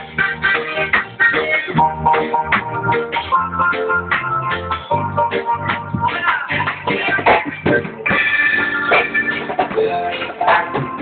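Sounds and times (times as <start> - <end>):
electric organ chords: 0.0 - 11.0
live band playing: 0.0 - 11.0.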